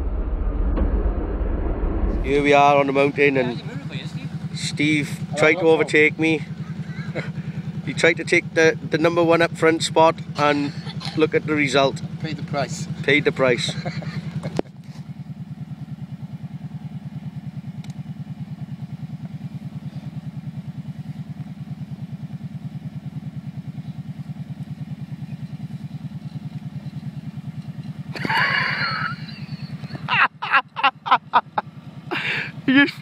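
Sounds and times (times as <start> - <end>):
loud burst: 0.0 - 3.8
quad bike engine idling: 2.3 - 33.0
person laughing: 6.6 - 7.6, 10.4 - 11.3, 13.6 - 14.7, 28.1 - 33.0.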